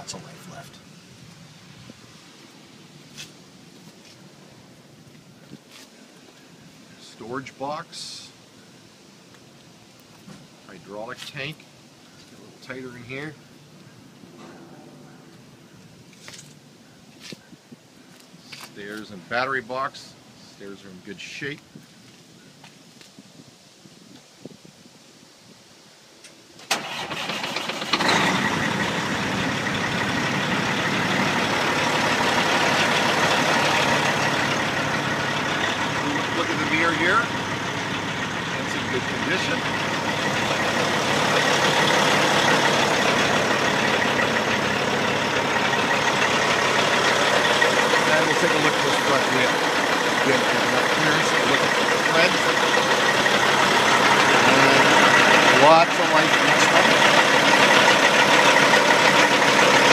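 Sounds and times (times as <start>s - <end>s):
diesel truck engine starting and idling: 26.6s - 59.9s.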